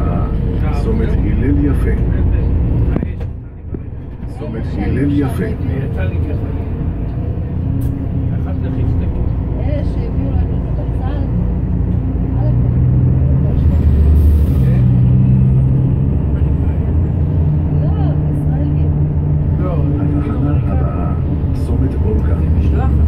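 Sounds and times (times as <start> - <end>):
bus engine and road rumble: 0.0 - 23.0.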